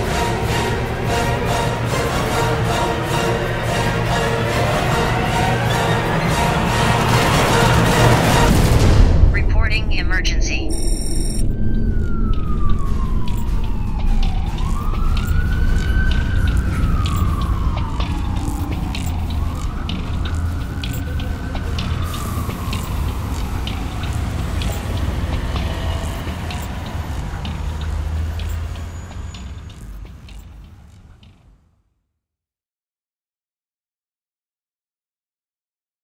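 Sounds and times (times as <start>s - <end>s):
emergency siren wailing: 0.0s - 31.6s
low rumble: 6.5s - 28.8s
sharp high ticks: 13.3s - 31.4s.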